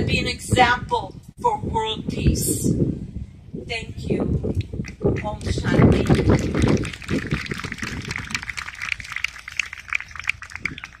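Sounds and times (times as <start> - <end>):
audience clapping: 5.8 - 11.0.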